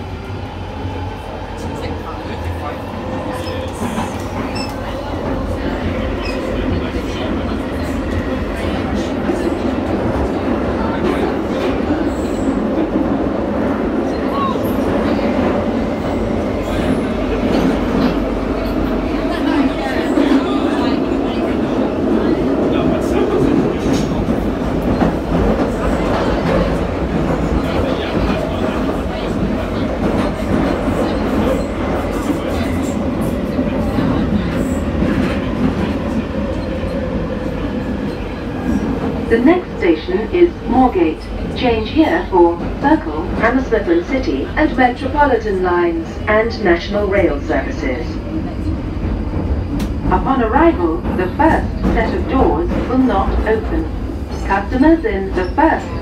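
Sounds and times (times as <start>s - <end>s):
underground train rumbling in tunnel: 0.0s - 56.0s.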